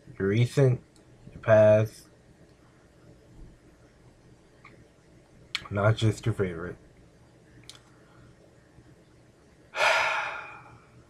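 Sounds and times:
loud breath close to microphone: 9.8 - 10.8.

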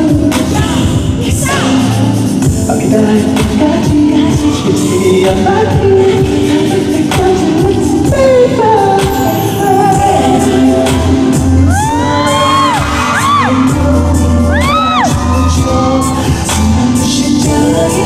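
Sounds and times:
pop song with sung vocals: 0.0 - 18.0.

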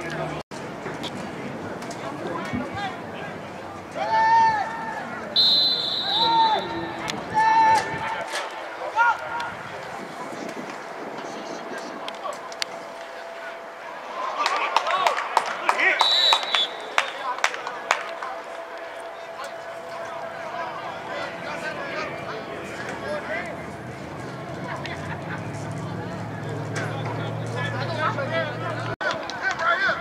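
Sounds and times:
referee's whistle blast: 5.4 - 7.0, 16.0 - 17.2
people shouting: 5.7 - 8.3.

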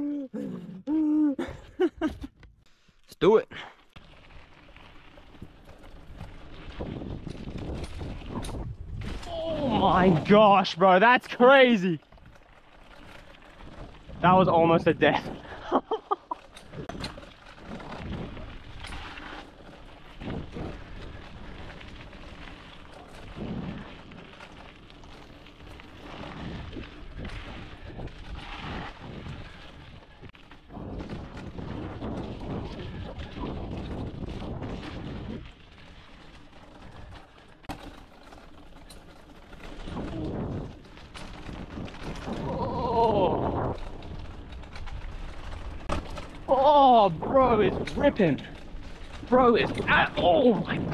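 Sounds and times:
tyres rolling over dirt: 3.5 - 50.9
bike knocking and rattling: 3.6 - 50.9
wind buffeting microphone: 5.9 - 10.3, 25.2 - 37.2.

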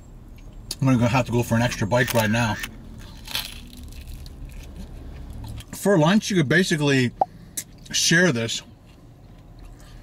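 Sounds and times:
low steady hum: 0.0 - 10.0
pizza crust crunch: 1.6 - 5.9
chewing: 8.8 - 10.0.

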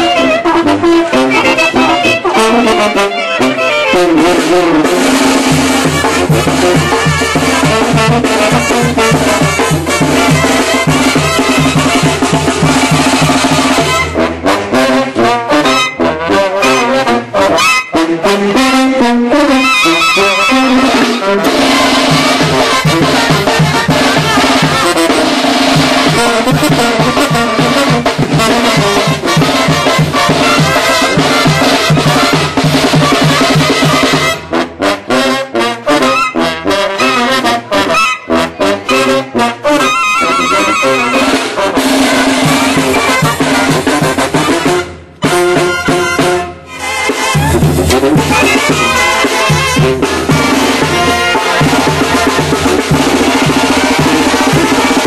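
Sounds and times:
brass band playing: 0.0 - 55.0.

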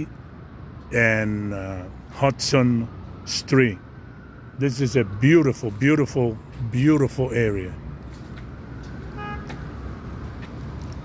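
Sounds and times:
street traffic: 0.0 - 11.0
vehicle horn toot: 9.2 - 9.6.

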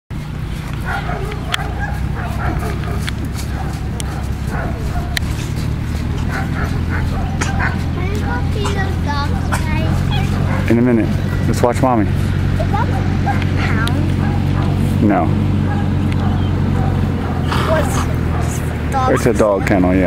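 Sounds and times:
steady low rumble: 0.1 - 20.0
dogs barking and yipping: 0.2 - 20.0.

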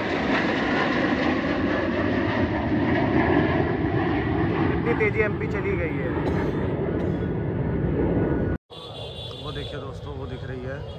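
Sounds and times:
fighter jets passing overhead: 0.0 - 10.9.

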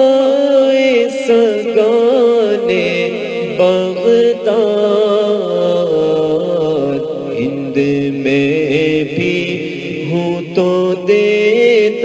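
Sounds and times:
person chanting devotional song: 0.0 - 12.0.

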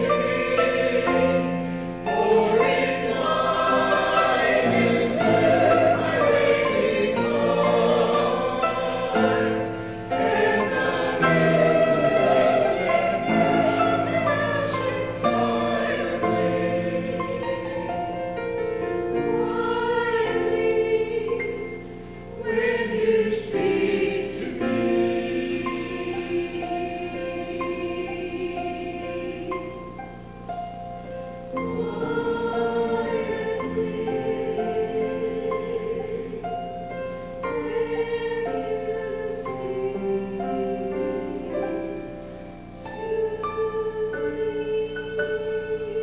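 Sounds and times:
mixed choir singing: 0.0 - 29.9, 31.5 - 46.0.

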